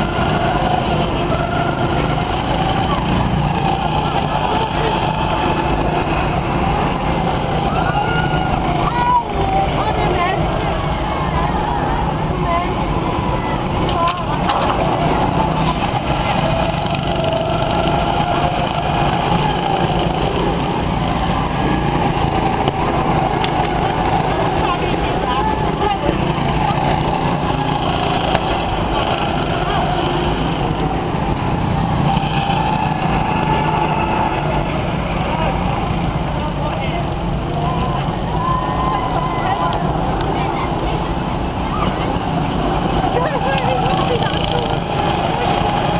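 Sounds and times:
go-kart engines running: 0:00.0 - 0:45.9
voices: 0:00.0 - 0:45.9.

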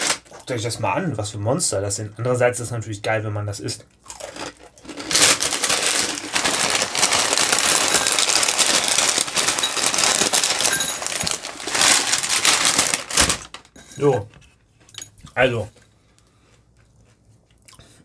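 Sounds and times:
plastic bag crinkling: 0:00.0 - 0:00.4, 0:04.1 - 0:13.8.

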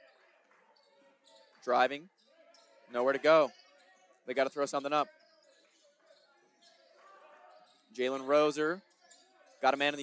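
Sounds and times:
gym hall game noise: 0:00.0 - 0:10.0.

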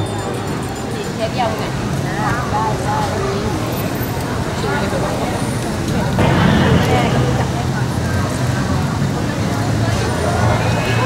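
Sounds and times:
crowd voices talking: 0:00.0 - 0:11.0.

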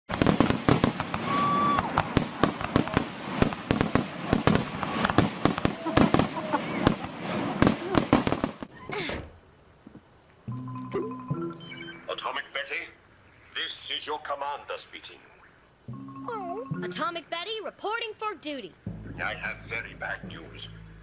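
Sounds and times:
sharp bangs and pops: 0:00.1 - 0:08.7
voices: 0:05.4 - 0:09.3, 0:12.0 - 0:20.8.

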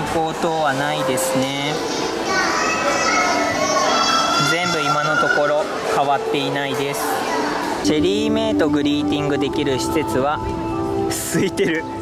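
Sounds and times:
children calling and chattering: 0:00.0 - 0:12.0.

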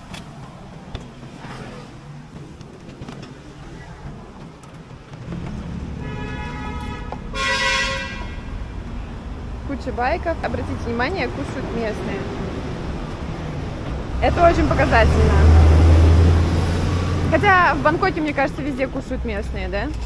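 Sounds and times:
road traffic: 0:00.0 - 0:20.0
vehicle engine rumbling: 0:00.0 - 0:20.0
car horn: 0:05.8 - 0:08.6.

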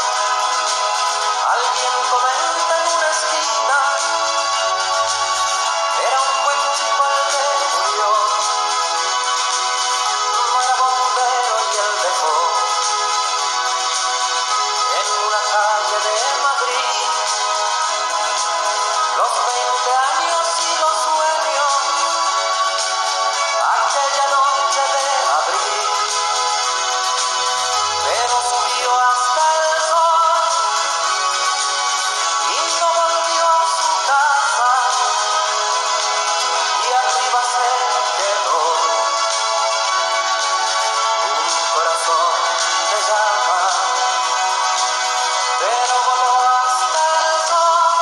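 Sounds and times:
instrumental backing: 0:00.0 - 0:48.0
man singing a slow ballad: 0:01.4 - 0:04.2, 0:06.0 - 0:08.4, 0:10.5 - 0:12.7, 0:14.9 - 0:17.2, 0:19.2 - 0:22.1, 0:23.6 - 0:25.8, 0:28.0 - 0:30.7, 0:32.4 - 0:35.4, 0:36.8 - 0:39.1, 0:41.7 - 0:44.0, 0:45.6 - 0:48.0.

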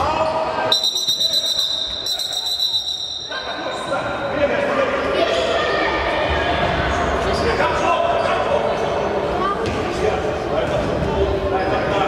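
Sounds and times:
voices calling out: 0:00.6 - 0:06.0.

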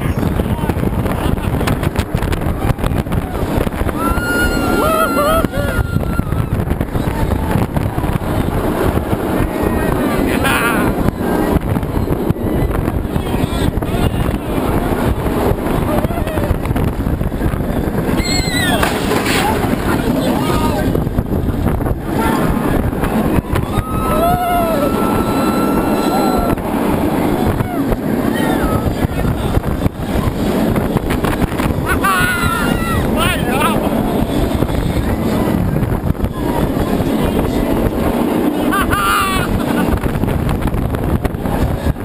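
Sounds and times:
roller coaster train roaring on track: 0:00.0 - 0:42.0
wind buffeting microphone: 0:00.0 - 0:42.0
riders yelling: 0:03.9 - 0:06.5, 0:23.2 - 0:29.3, 0:31.8 - 0:34.0.

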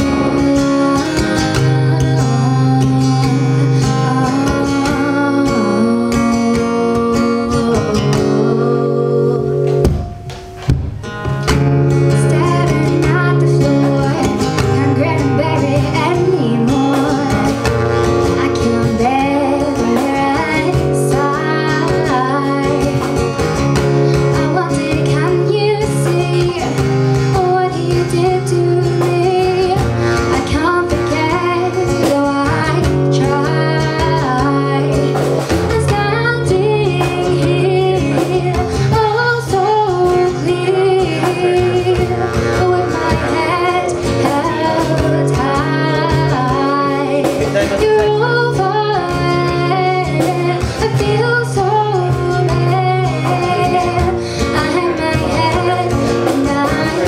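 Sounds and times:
woman singing: 0:00.0 - 0:10.3, 0:11.5 - 0:57.0
acoustic guitar: 0:00.0 - 0:57.0.

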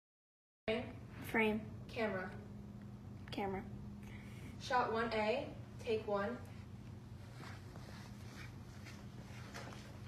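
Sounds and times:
faint soft rustles: 0:06.5 - 0:10.0.

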